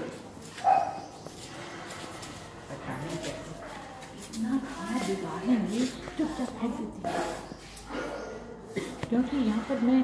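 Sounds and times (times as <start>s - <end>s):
dog barking: 0.6s - 1.1s.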